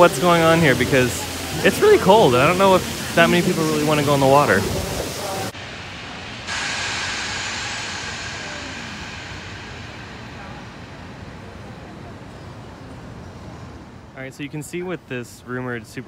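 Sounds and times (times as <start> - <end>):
distant city hiss: 0.0 - 16.0.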